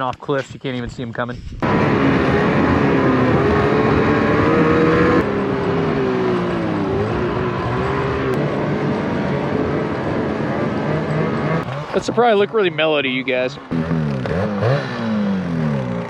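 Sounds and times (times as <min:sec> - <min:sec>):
snowmobile engine running: 0:01.6 - 0:16.0.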